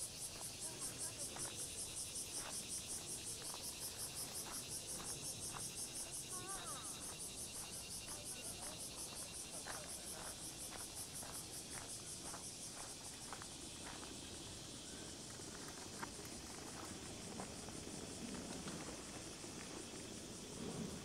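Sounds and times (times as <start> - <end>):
cicadas buzzing: 0.0 - 21.0.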